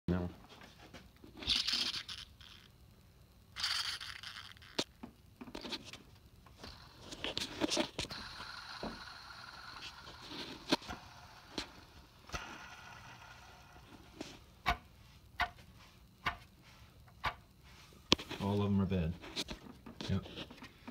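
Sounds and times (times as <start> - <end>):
pulley bearings whirring: 3.6 - 4.9, 6.5 - 14.2.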